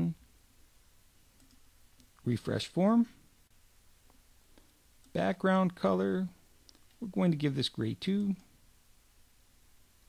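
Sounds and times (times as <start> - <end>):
computer mouse click: 1.4 - 2.2.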